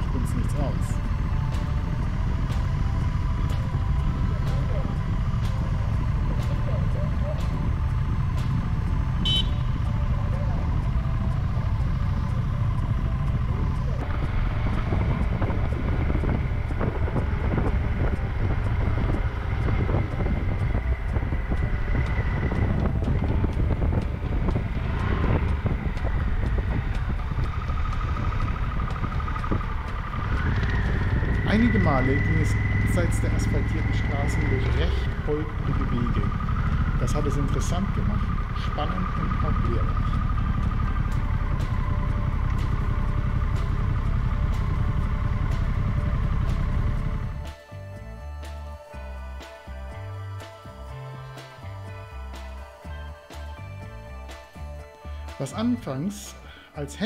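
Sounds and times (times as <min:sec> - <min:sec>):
motorcycle engine running: 0:00.0 - 0:57.0
wind rumble on microphone: 0:11.9 - 0:33.1.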